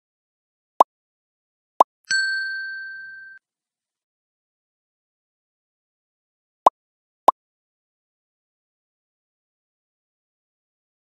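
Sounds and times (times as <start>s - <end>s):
notification bell ding: 2.1s - 3.4s.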